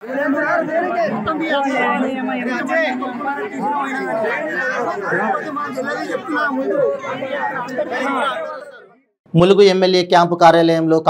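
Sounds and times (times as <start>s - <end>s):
overlapping chatter of voices: 0.0s - 9.2s.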